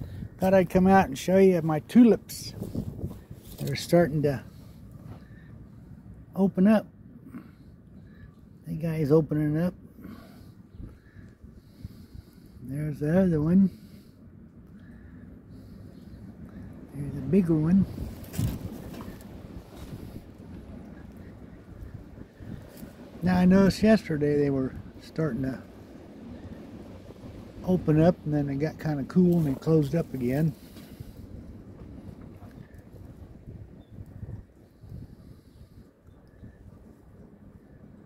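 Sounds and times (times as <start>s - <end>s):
wind rumble on microphone: 0.0s - 38.0s.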